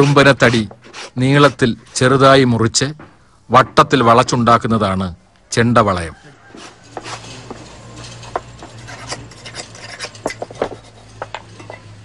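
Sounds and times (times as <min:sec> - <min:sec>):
hide rubbing and scraping: 0:06.5 - 0:12.0.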